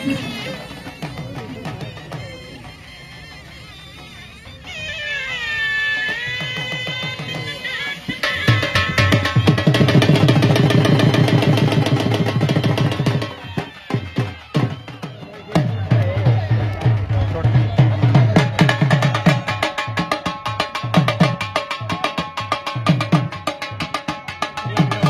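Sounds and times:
drum beaten in fast rhythm: 0:00.0 - 0:04.8, 0:05.4 - 0:25.0
people's voices: 0:00.0 - 0:20.2, 0:23.7 - 0:25.0.

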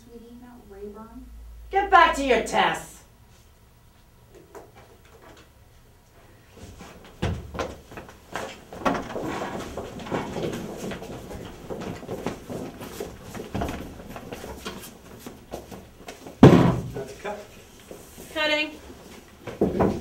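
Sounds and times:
knocks and clattering: 0:06.7 - 0:17.2, 0:19.4 - 0:20.0
loud thump: 0:16.4 - 0:17.1.

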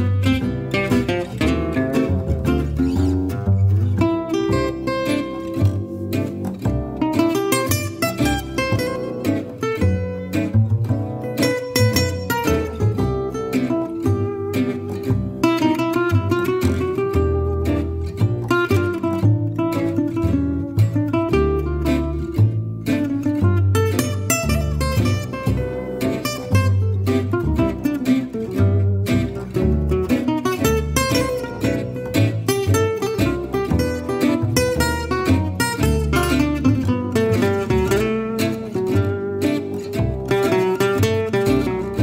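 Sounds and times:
acoustic guitar lead line: 0:00.0 - 0:42.0
plucked double bass: 0:00.0 - 0:42.0
rhythm acoustic guitar: 0:00.0 - 0:42.0.

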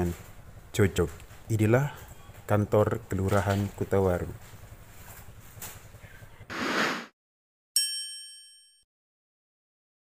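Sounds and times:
bright chime ding: 0:07.8 - 0:08.8.

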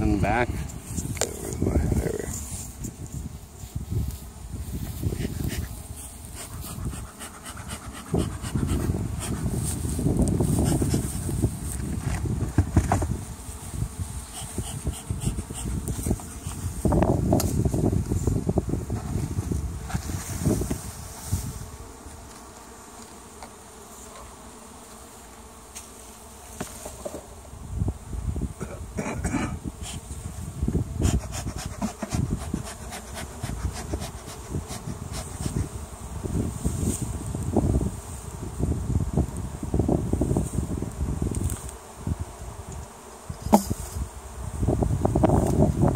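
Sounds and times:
bees buzzing: 0:00.0 - 0:45.9
wooden hive covers knocking: 0:43.5 - 0:43.8.

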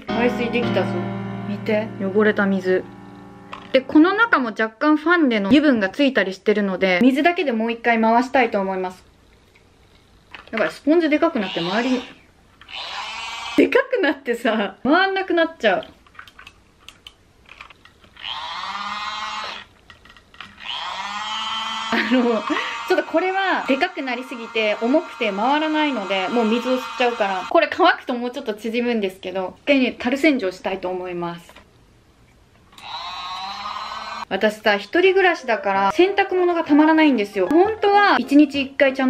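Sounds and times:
small electric motor whining: 0:11.4 - 0:13.6, 0:18.2 - 0:19.7, 0:20.6 - 0:27.5, 0:32.8 - 0:34.3.

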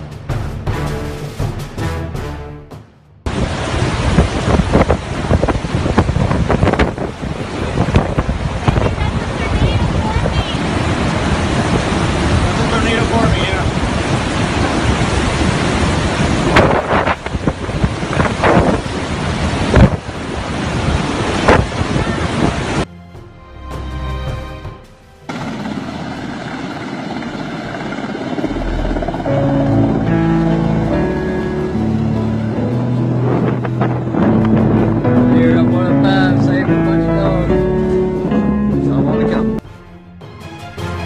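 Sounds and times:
driving rain: 0:03.3 - 0:22.9, 0:28.3 - 0:39.6
hurricane wind: 0:03.3 - 0:22.9, 0:25.3 - 0:39.6
wind buffeting microphone: 0:03.3 - 0:22.9, 0:25.4 - 0:39.5
music jingle: 0:28.4 - 0:41.0.

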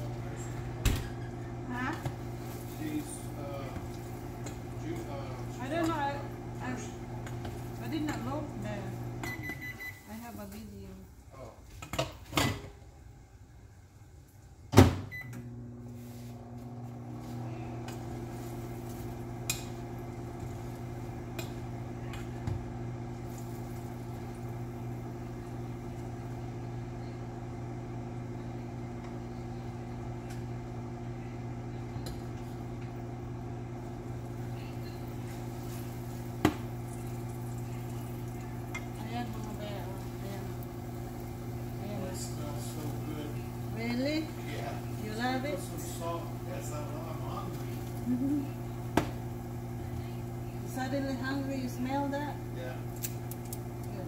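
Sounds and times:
microwave humming: 0:00.0 - 0:11.2, 0:11.9 - 0:54.0.

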